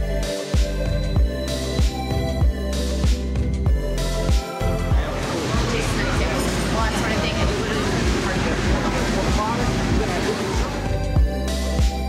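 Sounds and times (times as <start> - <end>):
music with steady beat: 0.0 - 12.0
voices: 5.0 - 11.0.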